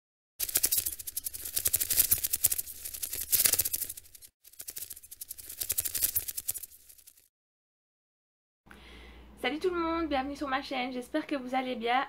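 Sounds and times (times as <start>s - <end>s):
rapid crackling rattle of clicks: 0.4s - 7.2s.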